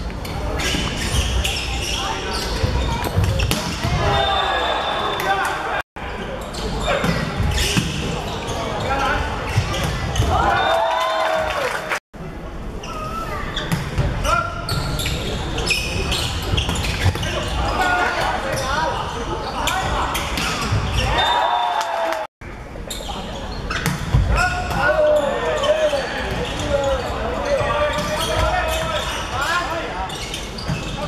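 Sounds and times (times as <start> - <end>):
sneakers squeaking on court: 0.2 - 5.4, 6.3 - 10.4, 12.8 - 21.3, 22.9 - 31.0.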